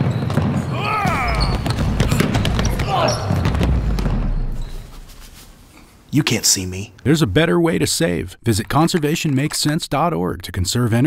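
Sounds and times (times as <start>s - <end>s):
basketball bouncing on hardwood floor: 0.0s - 4.8s
players' voices: 0.7s - 3.6s.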